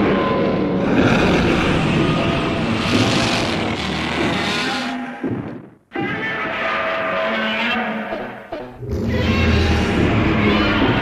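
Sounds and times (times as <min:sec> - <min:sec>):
monster growling roar: 0:00.0 - 0:05.0.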